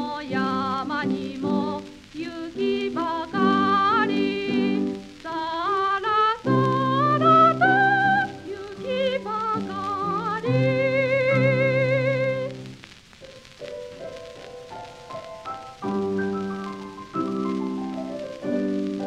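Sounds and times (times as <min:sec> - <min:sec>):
piano chords: 0:00.0 - 0:05.2, 0:06.4 - 0:19.0
woman singing with vibrato: 0:00.0 - 0:12.6.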